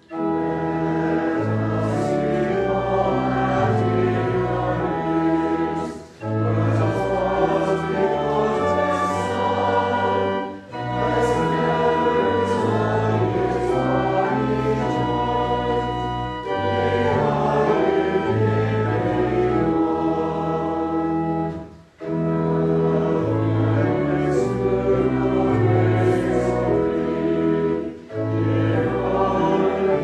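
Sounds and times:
choir singing: 0:00.0 - 0:30.0
organ chords: 0:00.0 - 0:30.0.

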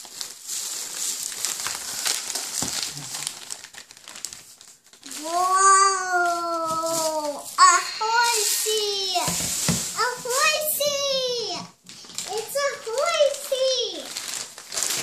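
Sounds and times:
toddler making excited sounds: 0:05.1 - 0:09.4, 0:10.0 - 0:14.2.

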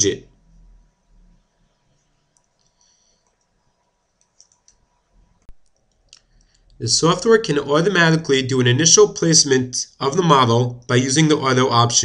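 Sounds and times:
computer mouse clicks: 0:02.3 - 0:03.6, 0:04.2 - 0:06.8.

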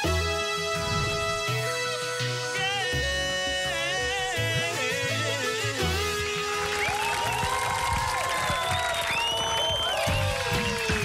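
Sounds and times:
band playing live music: 0:00.6 - 0:07.6
sliding gliding tones: 0:00.7 - 0:02.2
applause: 0:06.2 - 0:11.0.

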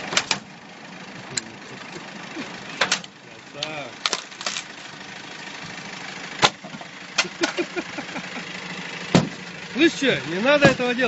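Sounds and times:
car engine idling: 0:00.0 - 0:11.0
knocks on car body: 0:09.1 - 0:09.4.

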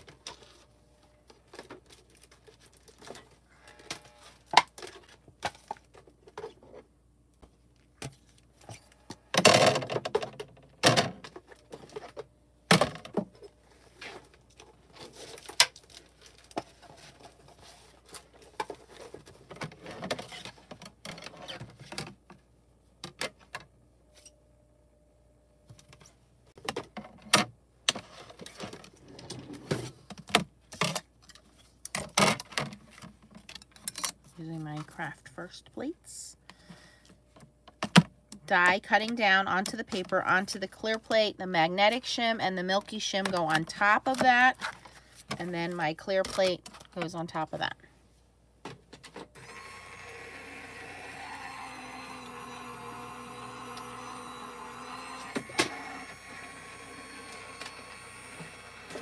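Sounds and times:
craft supplies rummaged through: 0:00.0 - 0:22.4, 0:25.9 - 0:35.9.

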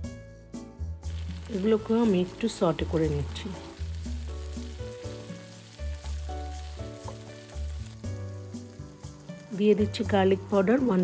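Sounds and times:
background music with bass: 0:00.0 - 0:11.0
vegetables sizzling in oil: 0:01.0 - 0:11.0
spatula stirring in wok: 0:01.1 - 0:09.5.

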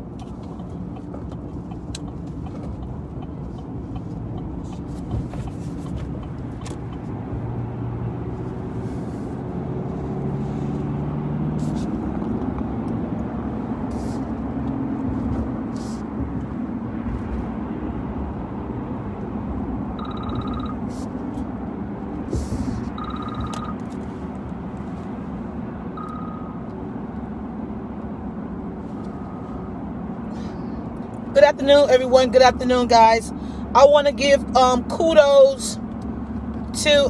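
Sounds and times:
car road and engine noise: 0:00.0 - 0:37.0
short high electronic beep: 0:20.0 - 0:20.8, 0:23.0 - 0:23.8, 0:26.0 - 0:26.6.

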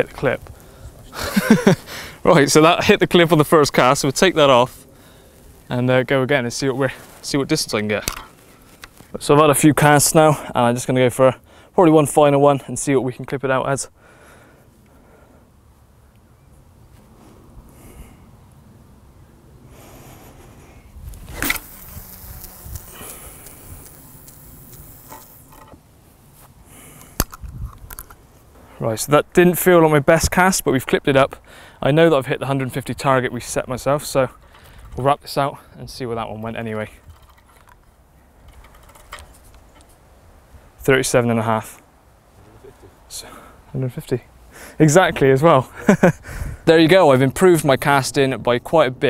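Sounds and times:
faint ticks and rustles: 0:20.5 - 0:28.8
wind on microphone: 0:20.8 - 0:24.0, 0:27.4 - 0:28.0, 0:46.2 - 0:46.7
fishing rod whooshing: 0:21.2 - 0:22.6
fishing line hissing off reel: 0:21.2 - 0:25.6.

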